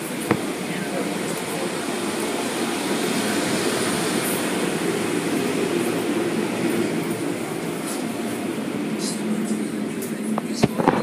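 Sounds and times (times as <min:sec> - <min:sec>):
car wash machinery rumbling: 0:00.0 - 0:11.0.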